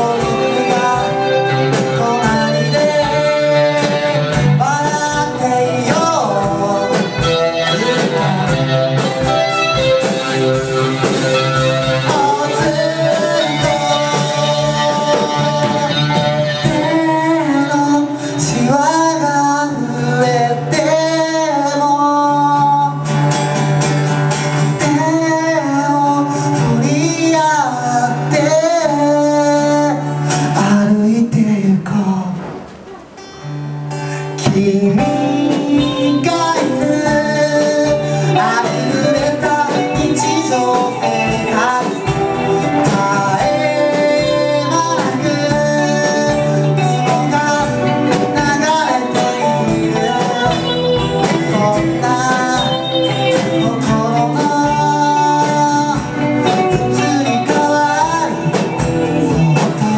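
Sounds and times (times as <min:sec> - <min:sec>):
saxophone: 0:00.0 - 0:18.6, 0:34.9 - 0:59.9
person singing: 0:00.0 - 0:23.7, 0:24.6 - 0:59.9
live band playing: 0:00.0 - 0:59.9.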